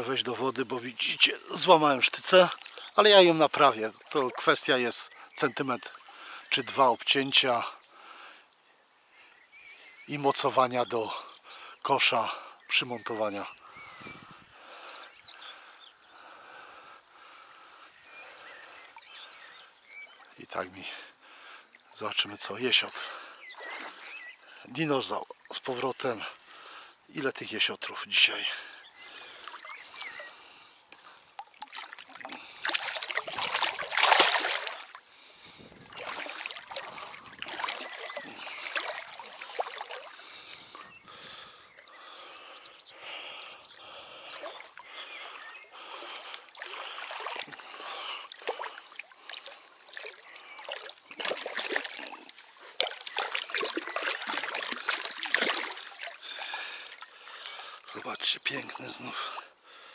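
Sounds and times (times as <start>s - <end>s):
water splashing and sloshing: 0.0s - 6.8s, 17.9s - 26.8s, 29.0s - 59.5s.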